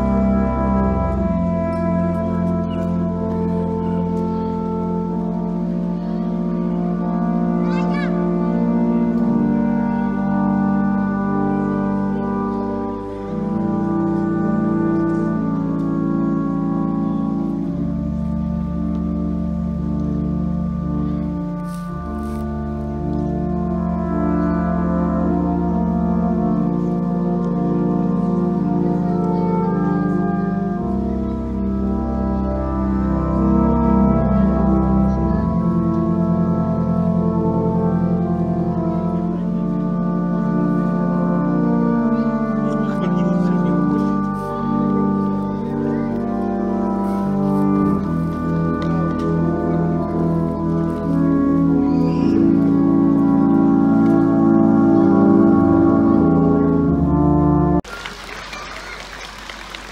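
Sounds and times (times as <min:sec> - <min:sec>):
hunting horns playing chords: 0:00.0 - 0:57.9.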